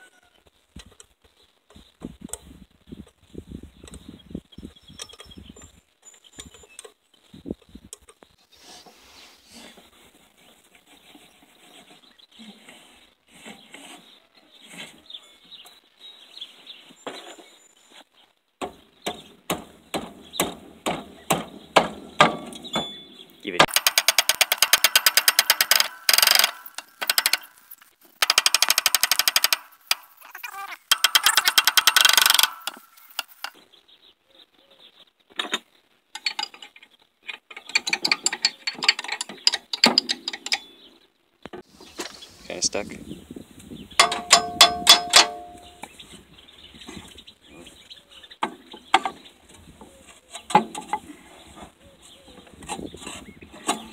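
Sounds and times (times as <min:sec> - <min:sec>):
ratchet wrench clicking: 0:23.7 - 0:30.2, 0:30.9 - 0:33.5.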